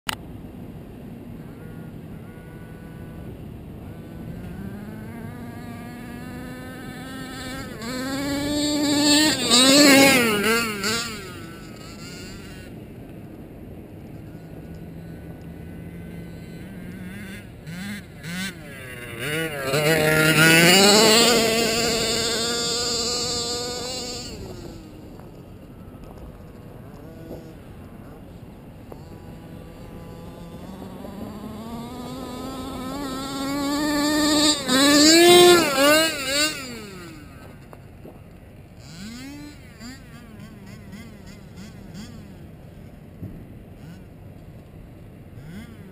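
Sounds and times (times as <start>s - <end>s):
small engine buzzing and revving: 0.7s - 45.9s.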